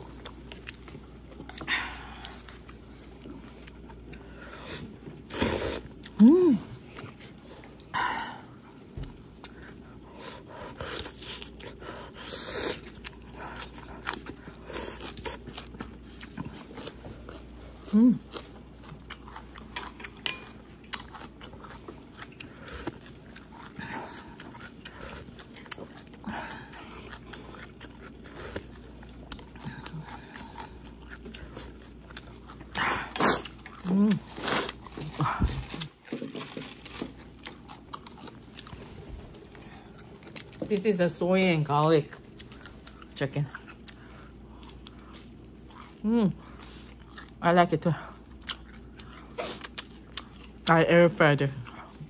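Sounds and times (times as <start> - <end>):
person chewing food: 0.0 - 50.8, 51.6 - 52.0
person humming: 6.2 - 6.8, 17.9 - 18.2, 33.8 - 34.2, 46.0 - 46.4.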